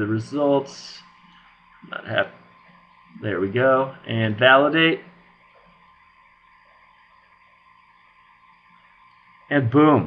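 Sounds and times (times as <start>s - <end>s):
faint hum: 0.0s - 10.0s
room tone hiss: 0.0s - 10.0s.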